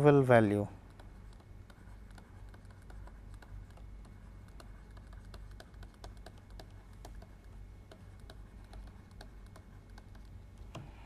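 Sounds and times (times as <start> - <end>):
stylus tapping on tablet: 0.8 - 11.0.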